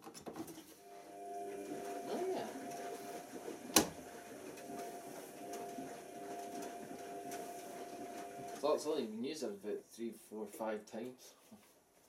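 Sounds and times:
washing machine filling hum: 0.8 - 8.9.

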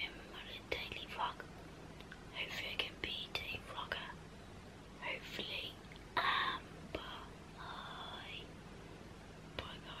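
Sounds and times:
girl whispering: 2.4 - 4.2, 5.0 - 8.5, 9.6 - 10.0.

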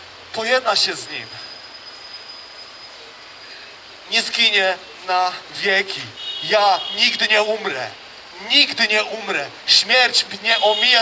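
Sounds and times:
faint high whine: 0.0 - 7.4
city background noise: 0.0 - 11.0.

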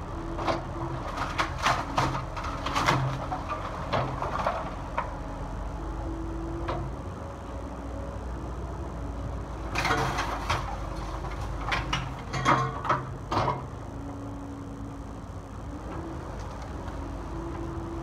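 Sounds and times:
excavator engine and hydraulics: 0.0 - 18.0
wood debris crunching: 9.7 - 13.6.

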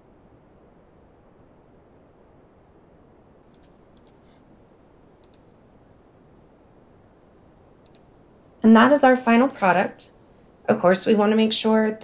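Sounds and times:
faint background hiss: 0.0 - 12.0
computer mouse clicking: 3.5 - 4.4, 5.2 - 5.6, 7.8 - 8.1.

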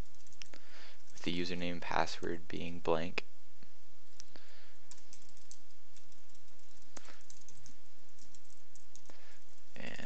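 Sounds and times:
computer keyboard typing: 0.0 - 1.2, 4.9 - 9.6
steady low hum: 0.0 - 10.0.

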